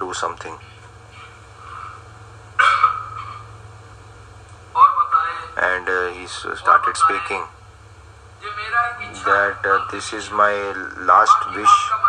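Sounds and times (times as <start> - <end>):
dog barking: 2.6 - 3.5.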